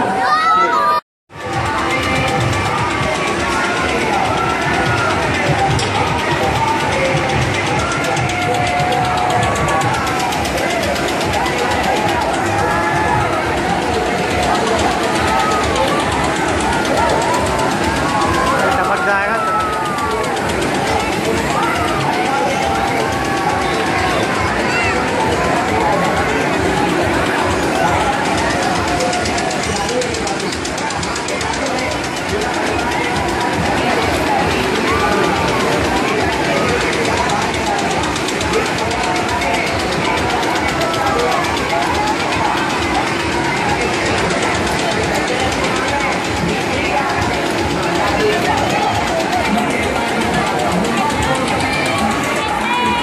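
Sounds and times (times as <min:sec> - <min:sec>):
crowd voices and shouts: 0:00.0 - 0:53.0
engine chugging: 0:01.3 - 0:53.0.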